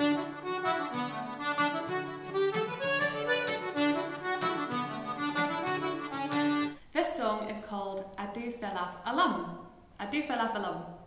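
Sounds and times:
accordion tune: 0:00.0 - 0:06.9.

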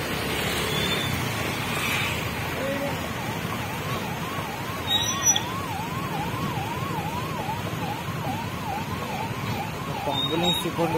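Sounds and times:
traffic engines rumbling: 0:00.0 - 0:10.9
police siren wailing: 0:02.6 - 0:10.9.

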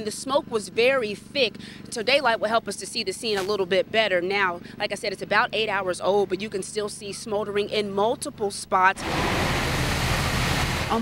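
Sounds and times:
fire hose spraying water: 0:09.0 - 0:11.0.

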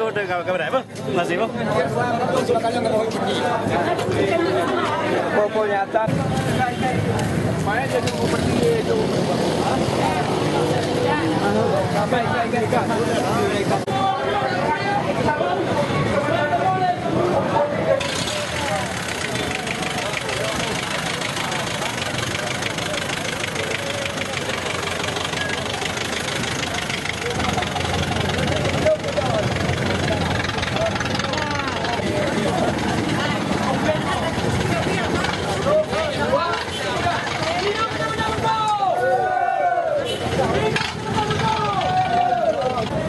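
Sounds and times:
people talking: 0:00.0 - 0:43.0
vehicle engine running: 0:18.0 - 0:38.6.

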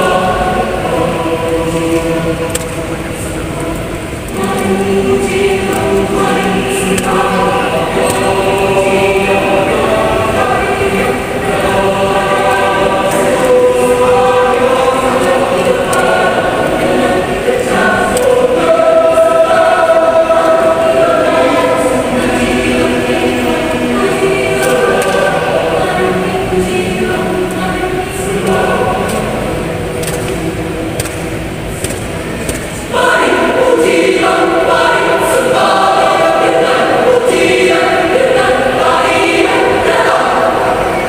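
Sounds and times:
choir singing in harmony: 0:00.0 - 0:41.0.

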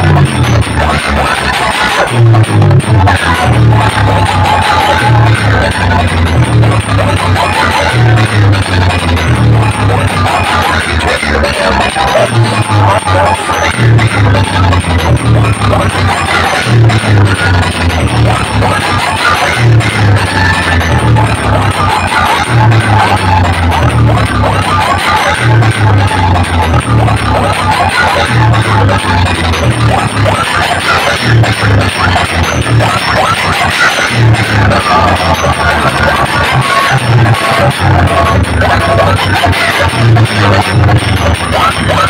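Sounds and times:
heavy repeating bass beat: 0:00.0 - 0:42.0
loud dj music: 0:00.0 - 0:42.0.

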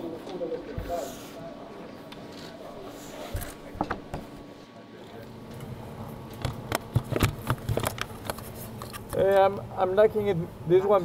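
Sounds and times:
faint voices: 0:00.0 - 0:05.4.

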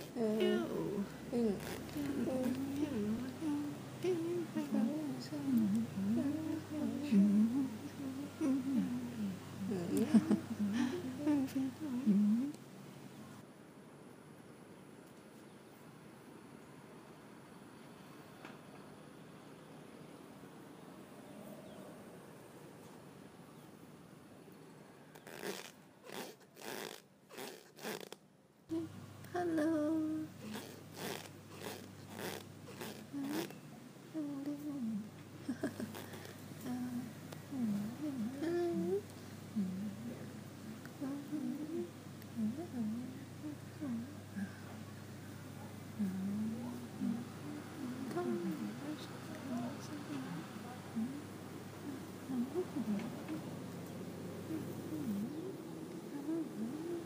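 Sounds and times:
woman humming: 0:00.0 - 0:12.6, 0:25.2 - 0:44.8, 0:46.0 - 0:53.5, 0:54.4 - 0:57.0.

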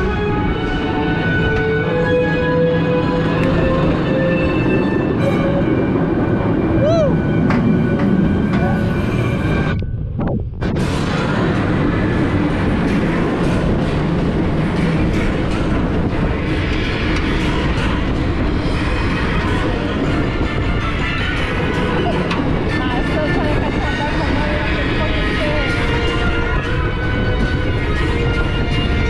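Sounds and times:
music: 0:00.0 - 0:29.0
roller coaster rumble and clatter: 0:00.0 - 0:29.0.

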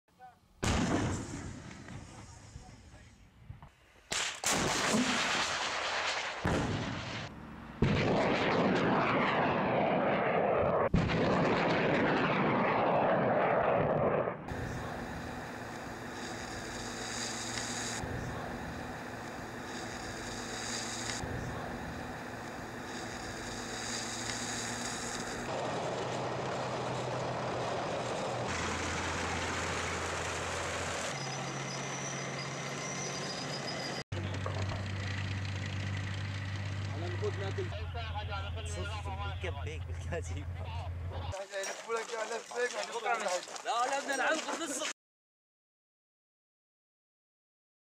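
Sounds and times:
heavy weapons fire: 0:00.6 - 0:02.1, 0:04.1 - 0:14.8
explosions: 0:00.6 - 0:02.3, 0:04.1 - 0:14.9
tracked vehicles moving: 0:14.5 - 0:41.3.

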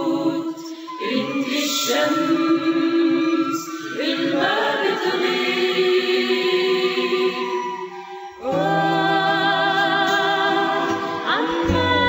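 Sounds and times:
voices singing long held notes: 0:00.0 - 0:12.0.

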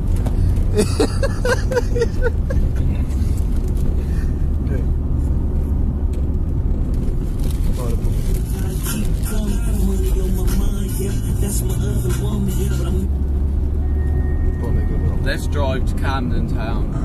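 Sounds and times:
car engine rumble: 0:00.0 - 0:17.0
road noise inside car: 0:00.0 - 0:17.0.

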